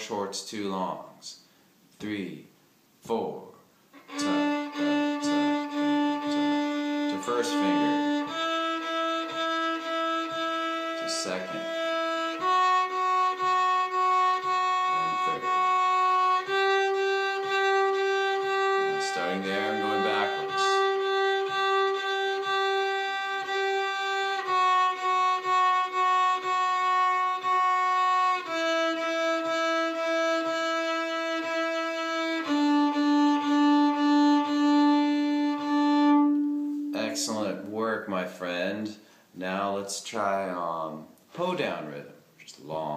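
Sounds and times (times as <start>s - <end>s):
fiddle bowed in short and long strokes: 4.0s - 37.7s.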